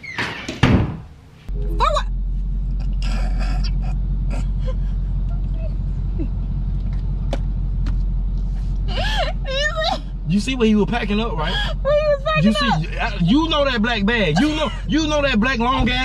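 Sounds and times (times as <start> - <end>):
low hum in car cabin: 1.5 - 16.0
stifled laughter: 2.8 - 6.3
person exclaiming: 11.8 - 13.2.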